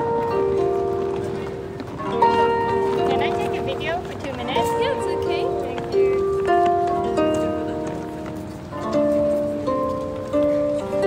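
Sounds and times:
harp chords plucked: 0.0 - 11.0.

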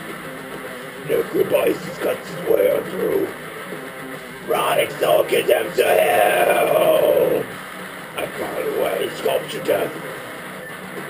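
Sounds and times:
heavy metal music: 0.0 - 10.6
man bellowing vocal: 4.5 - 7.5.

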